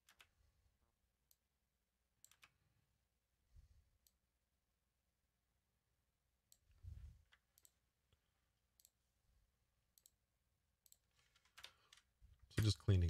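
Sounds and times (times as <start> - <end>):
computer mouse clicks: 2.2 - 2.6, 6.5 - 8.2, 8.8 - 9.0, 9.9 - 10.2, 10.8 - 12.8.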